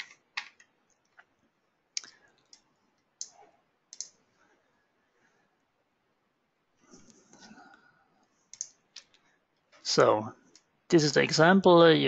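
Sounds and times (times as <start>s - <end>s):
computer mouse clicks: 2.0s - 4.2s, 8.5s - 9.2s.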